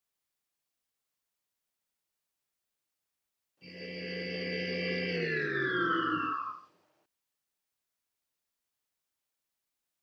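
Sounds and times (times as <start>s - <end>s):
electronic chord sliding downward: 3.7s - 6.7s.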